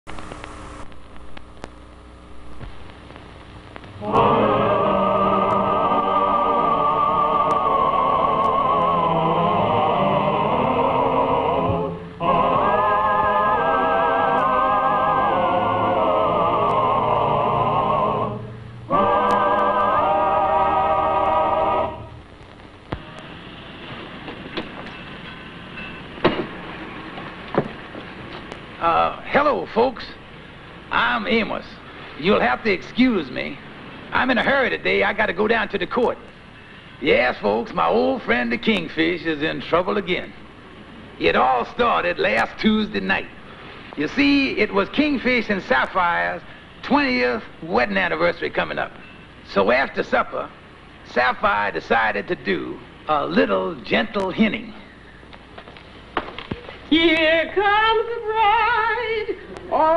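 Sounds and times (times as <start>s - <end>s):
film hiss: 0.0s - 59.9s
low hum: 0.1s - 29.4s
clicks and pops: 2.5s - 4.0s.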